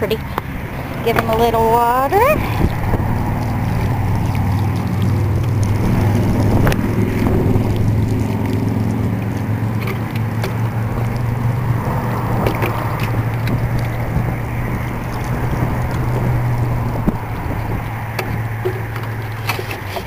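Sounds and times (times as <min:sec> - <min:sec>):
steady low rumble: 0:00.0 - 0:19.4
water sprinkling onto soil: 0:00.3 - 0:19.9.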